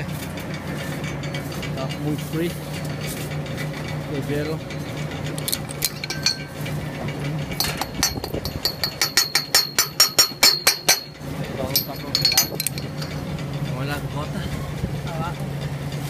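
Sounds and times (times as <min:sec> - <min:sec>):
low steady hum: 0:00.0 - 0:16.0
metal chain clinking: 0:03.8 - 0:13.7.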